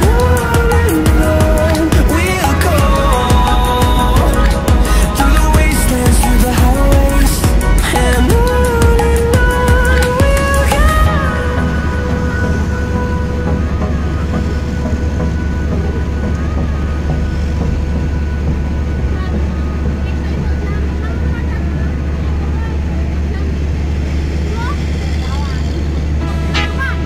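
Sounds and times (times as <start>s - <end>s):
vehicle engine and tyres rumbling: 0.0s - 27.0s.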